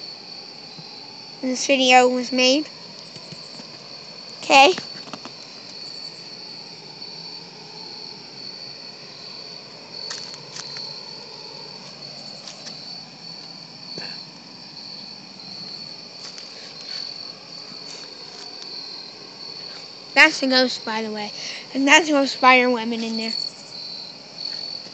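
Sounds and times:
crickets chirping: 0.0 - 24.9.

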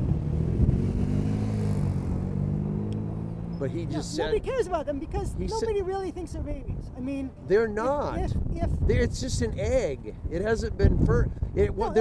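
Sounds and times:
car driving past: 0.0 - 3.9.

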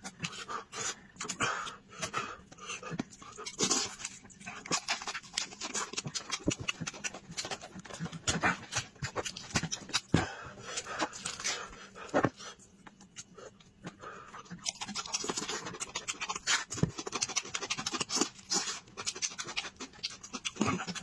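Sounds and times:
wet chewing and lip-smacking: 0.0 - 21.0.

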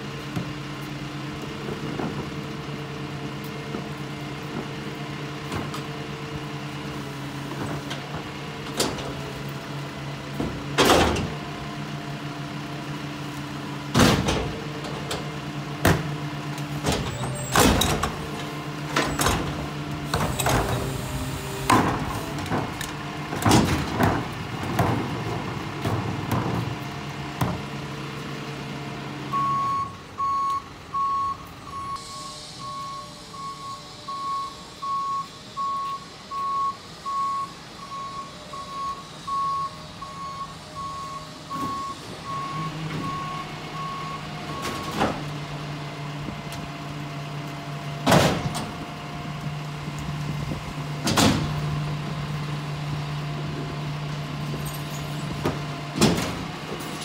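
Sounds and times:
truck engine running: 0.0 - 57.0
trash carts banging on hopper: 1.5 - 28.8, 41.5 - 57.0
truck backup alarm beeping: 29.2 - 45.2.

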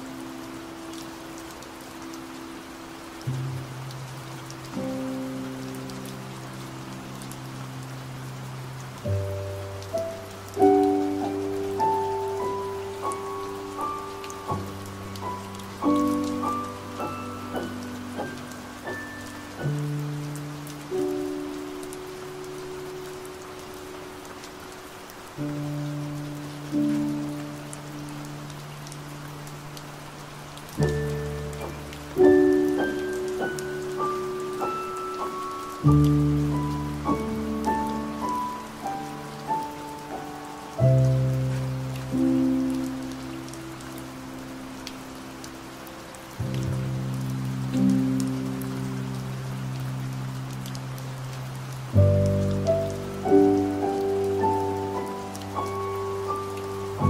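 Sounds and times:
rain hiss: 0.0 - 57.0
slow piano music: 0.0 - 57.0.

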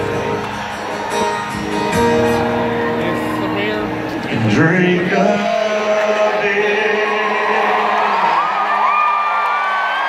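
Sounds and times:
live country ballad band: 0.0 - 8.8
person singing: 4.4 - 8.6.

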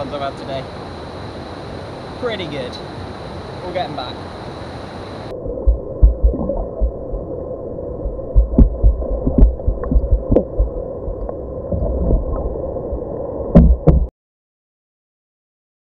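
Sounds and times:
muffled underwater rumble: 4.6 - 14.1
dull thumps of water: 13.6 - 14.1.

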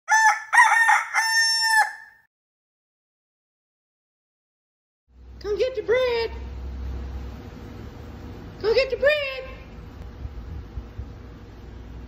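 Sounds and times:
rooster crowing: 0.1 - 2.3.

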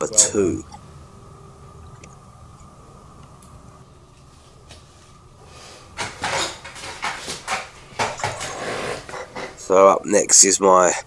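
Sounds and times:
faint steady hum: 0.0 - 11.0
sharp scrapes and knocks: 6.0 - 9.7.

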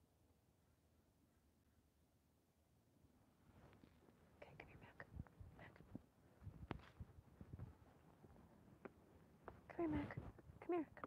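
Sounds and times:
faint whispered speech: 4.4 - 6.0.

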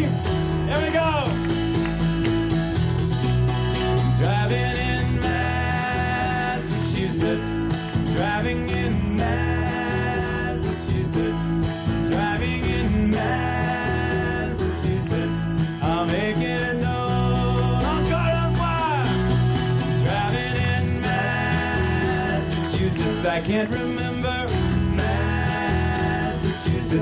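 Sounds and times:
acoustic guitar strumming: 0.0 - 27.0
electric bass line: 0.0 - 27.0.

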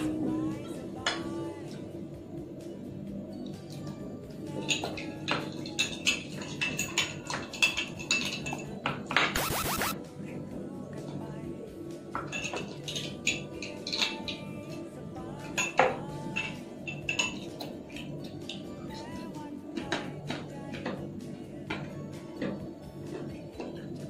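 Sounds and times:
background music: 0.0 - 24.0.

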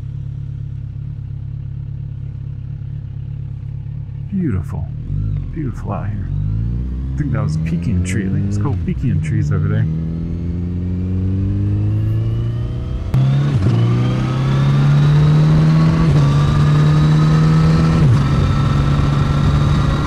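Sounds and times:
motorcycle engine accelerating: 0.0 - 20.0.

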